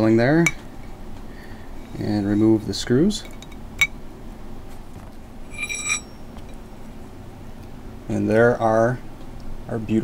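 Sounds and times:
light metallic clink: 0:05.5 - 0:06.6.

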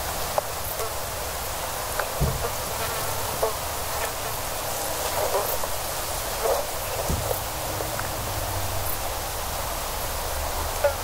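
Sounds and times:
steady hiss: 0:00.0 - 0:11.0.

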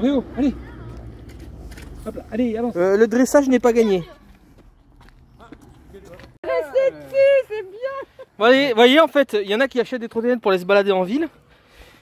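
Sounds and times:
footsteps on pavement: 0:00.6 - 0:07.3.

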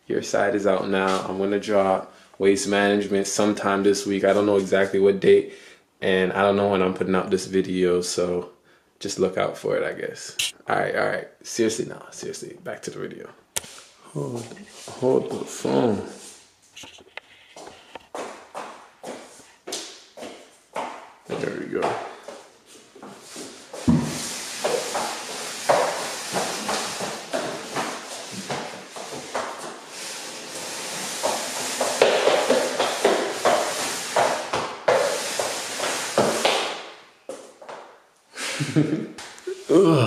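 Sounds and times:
child's footsteps on wooden floor: 0:16.8 - 0:29.9, 0:30.5 - 0:38.0.

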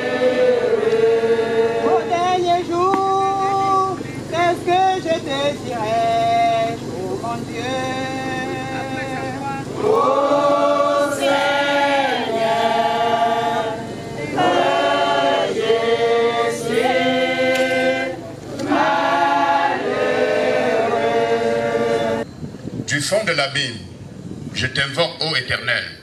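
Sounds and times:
choir singing a hymn: 0:00.0 - 0:02.8, 0:04.2 - 0:22.3.

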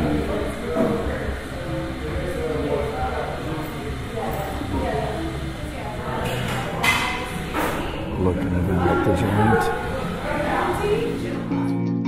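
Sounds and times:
chatter of customers: 0:00.0 - 0:12.0.

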